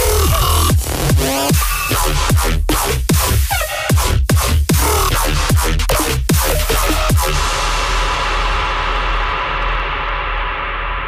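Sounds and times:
steady deep bass: 0.0s - 11.0s.

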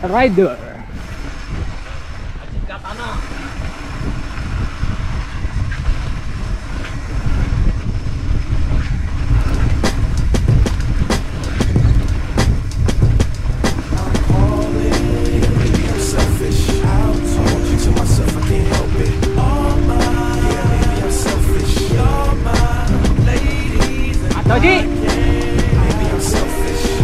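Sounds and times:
wind buffeting microphone: 0.0s - 27.0s
bike tyres rumbling on dirt: 3.2s - 14.6s.

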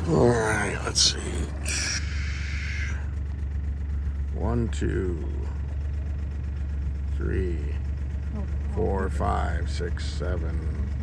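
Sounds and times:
engine running low rumble: 0.0s - 11.0s.

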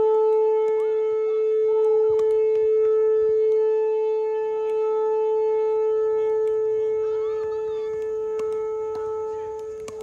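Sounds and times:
loud steady droning tone: 0.0s - 10.0s
paddles hitting plastic ball: 0.0s - 10.0s.

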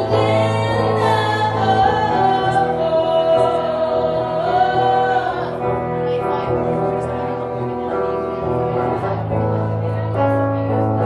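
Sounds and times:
electric guitar: 0.0s - 11.0s.

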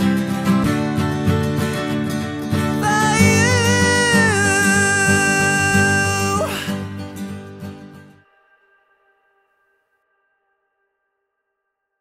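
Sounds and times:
acoustic guitar chord ringing: 0.0s - 10.4s.

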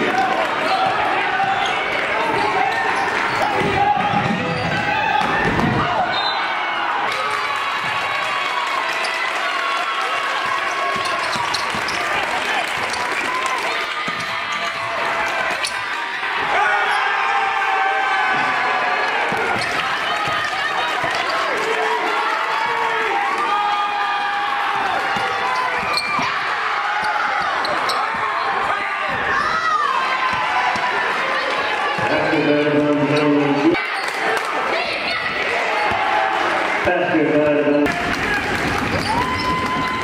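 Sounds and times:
voices of players and spectators: 0.0s - 40.0s.

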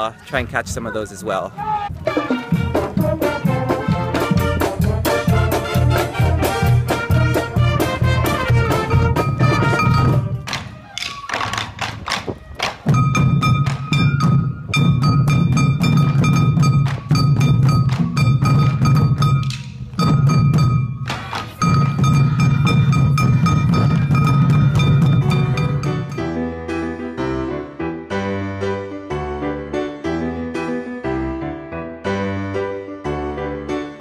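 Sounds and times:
brass marching band: 1.8s - 26.5s
taiko drums beaten fast: 12.8s - 26.2s.

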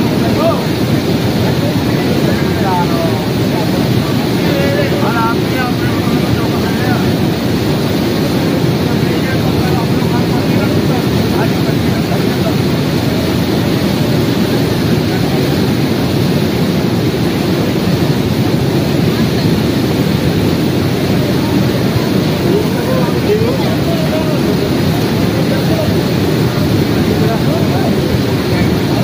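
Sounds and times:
roar of a flooded river: 0.0s - 29.0s.

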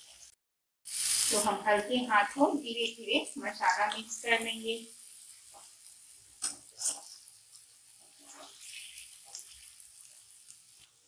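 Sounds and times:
faint frying sizzle: 0.0s - 11.0s
spatula strokes against pan: 3.6s - 11.0s.

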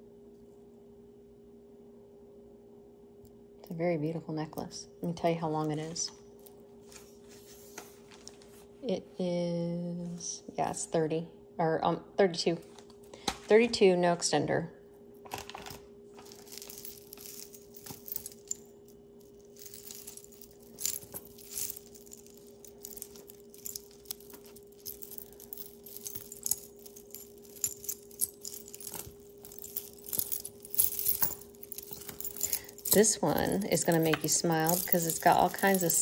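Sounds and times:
steady low hum: 15.9s - 36.0s
metal chains and beads clinking: 16.2s - 36.0s.

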